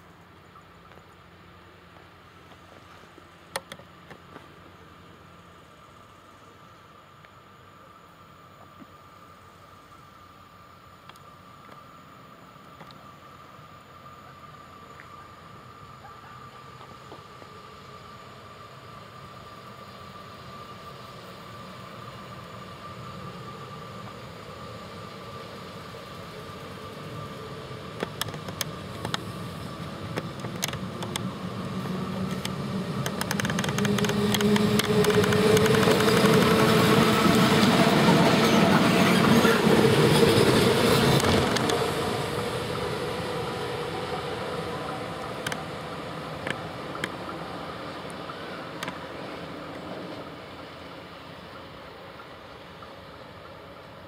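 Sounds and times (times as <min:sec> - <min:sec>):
electric locomotive high whine: 0:00.0 - 0:54.0
train wheels clicking: 0:26.8 - 0:53.6.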